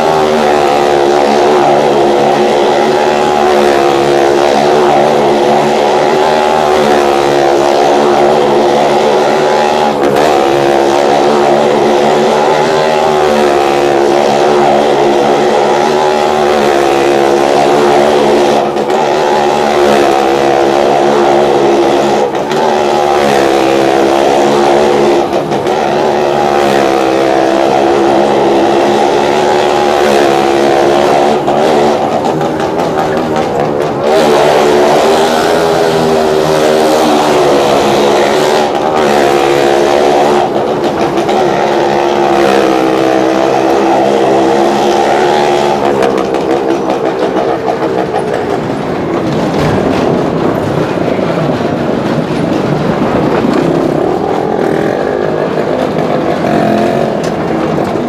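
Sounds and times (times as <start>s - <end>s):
engines revving hard: 0.0s - 58.0s.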